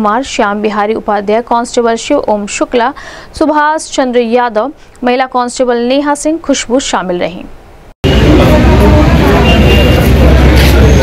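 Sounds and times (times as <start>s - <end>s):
heavy low rumble: 8.0s - 11.0s.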